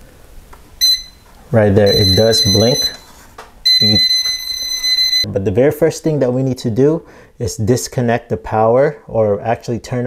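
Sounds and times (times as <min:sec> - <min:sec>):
voltage detector beeping: 0:00.8 - 0:05.3.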